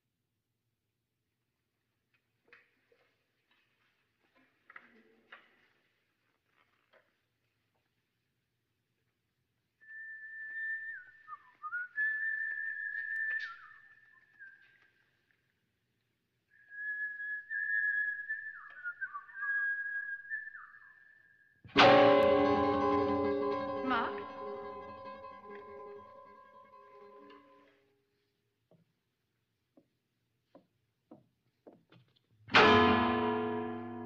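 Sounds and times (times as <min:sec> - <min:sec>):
person whistling: 0:09.8 - 0:14.8, 0:16.6 - 0:21.2.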